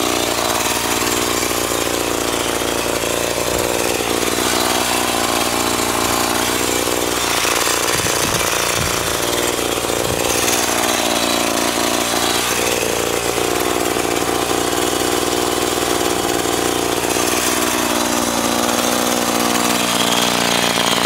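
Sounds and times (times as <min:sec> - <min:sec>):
chainsaw running: 0:00.0 - 0:21.0.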